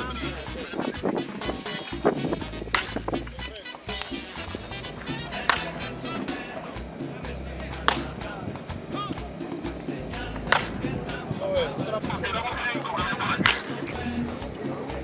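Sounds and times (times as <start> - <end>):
background music with steady beat: 0.0 - 15.0
bat hitting baseball: 2.4 - 6.8, 7.6 - 8.7, 10.3 - 11.0, 13.4 - 13.8.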